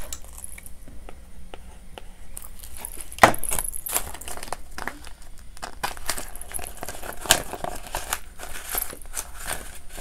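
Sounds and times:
banknotes and plastic rustling: 2.4 - 10.0.

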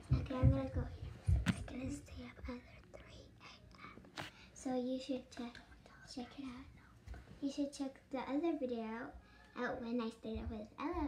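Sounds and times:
girl speaking: 0.0 - 4.0, 4.6 - 11.0
girl whispering: 0.7 - 4.0, 5.5 - 7.0.

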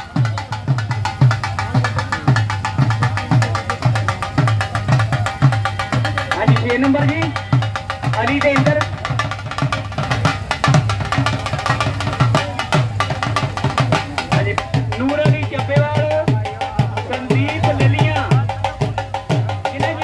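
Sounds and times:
dhol drum fast beat: 0.0 - 20.0.

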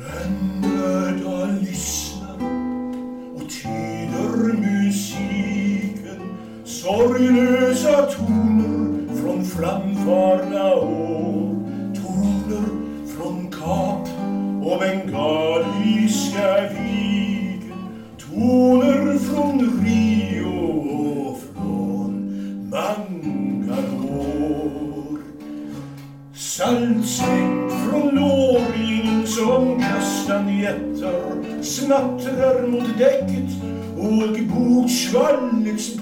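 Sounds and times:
classical guitar: 0.0 - 36.0
man singing: 0.0 - 36.0.

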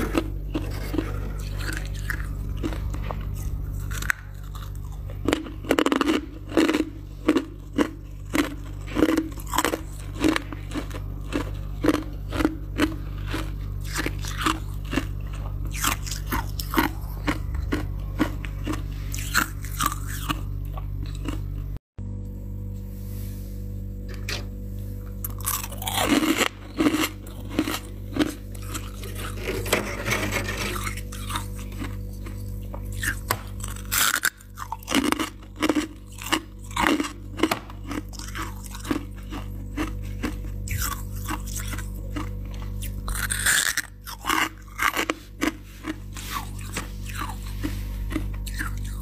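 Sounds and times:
steady low hum: 0.0 - 49.0
mouth crunching frost: 25.2 - 49.0.

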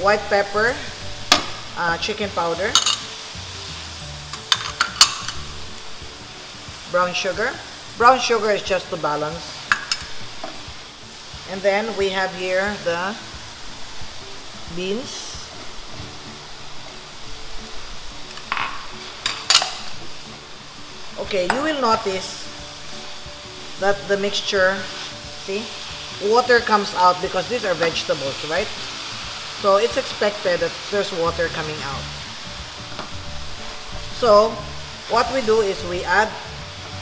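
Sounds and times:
vegetables sizzling in a wok: 0.0 - 37.0
spoons clicking against pan: 2.8 - 3.1, 4.3 - 5.4, 9.7 - 10.6, 18.3 - 20.0.

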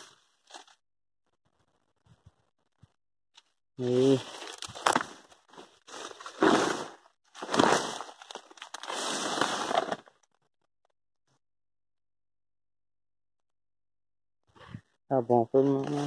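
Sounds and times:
grass and leaves rustling: 3.8 - 10.1.

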